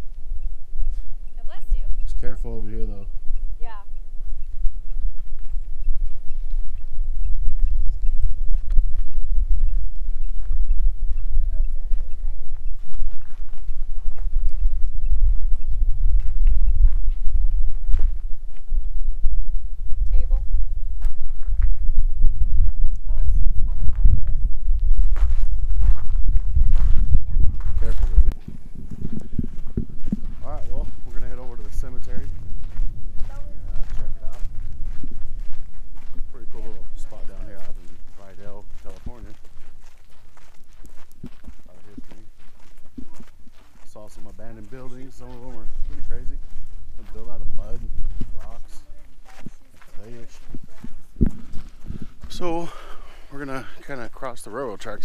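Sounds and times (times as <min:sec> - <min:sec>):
wind buffeting microphone: 0:00.0 - 0:55.0
footsteps on gravel: 0:00.9 - 0:19.5, 0:20.1 - 0:55.0.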